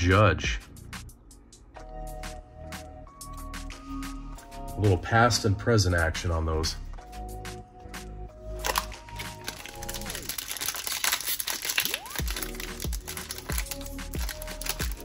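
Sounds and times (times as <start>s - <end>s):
background music with sustained notes: 0.0s - 15.0s
foil wrapper crinkling: 8.5s - 15.0s.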